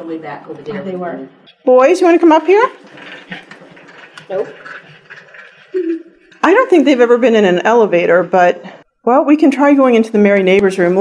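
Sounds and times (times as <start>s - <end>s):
person speaking: 5.8s - 11.0s.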